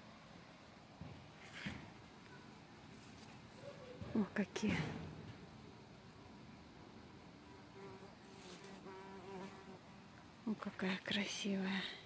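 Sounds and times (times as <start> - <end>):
bumblebee buzzing in flight: 7.7 - 9.8.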